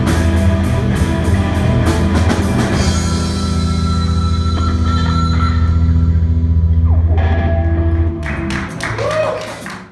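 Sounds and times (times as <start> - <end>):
rock band chord ringing: 0.0 - 8.8.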